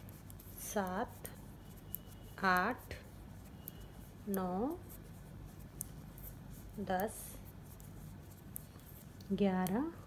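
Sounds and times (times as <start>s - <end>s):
knitting needles scratching: 0.0s - 10.0s
woman counting: 0.6s - 1.4s, 2.3s - 3.1s, 4.2s - 4.9s, 6.8s - 7.5s, 9.3s - 10.0s.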